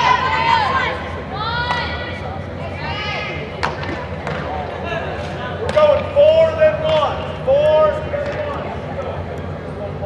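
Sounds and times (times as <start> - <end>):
loud shout: 0.0 - 2.1.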